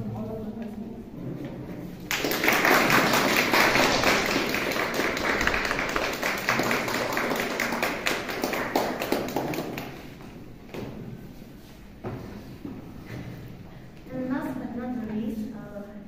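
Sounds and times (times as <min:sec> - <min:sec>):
small group clapping: 0:02.0 - 0:10.4.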